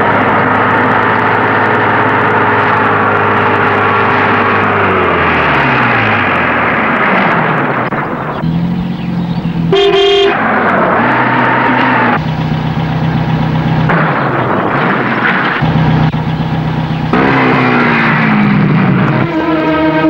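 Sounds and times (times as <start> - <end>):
vehicle engines droning: 0.0 - 20.0
car horn honk: 9.7 - 12.1, 19.1 - 20.0.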